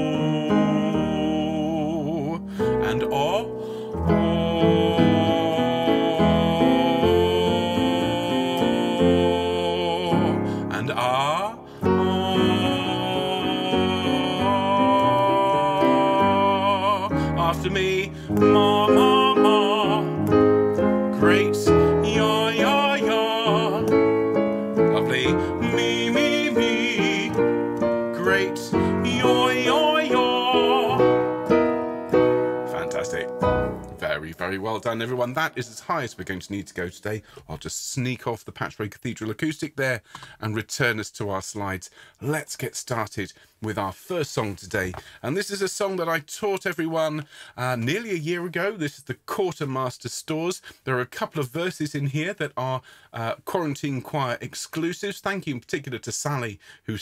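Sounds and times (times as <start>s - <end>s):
piano playing stepped pattern: 0.0s - 35.0s.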